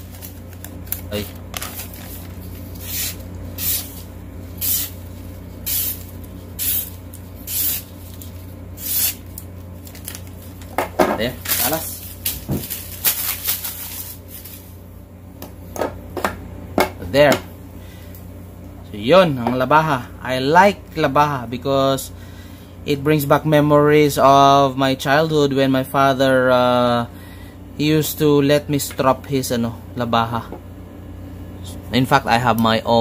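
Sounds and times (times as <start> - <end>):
knife slicing paper: 0.0 - 5.0, 5.6 - 9.4.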